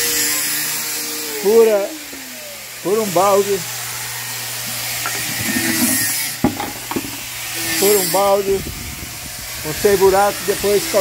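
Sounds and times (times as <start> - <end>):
plastic bucket rubbing on concrete: 4.6 - 7.3
bucket knocking: 5.0 - 7.2.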